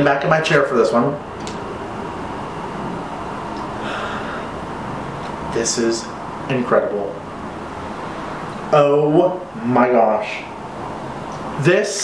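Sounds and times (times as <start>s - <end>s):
room noise: 0.0s - 12.0s
person sniffing deeply: 3.8s - 4.5s.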